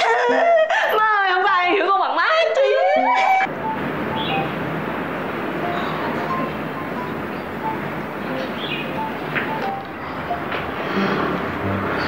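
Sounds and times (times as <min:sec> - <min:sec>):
constant rushing hiss: 0:03.5 - 0:10.8.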